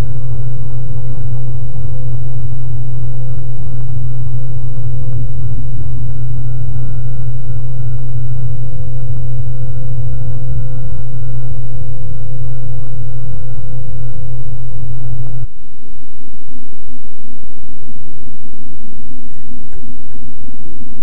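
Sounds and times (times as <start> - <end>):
faint steady whine: 0.0 - 21.0.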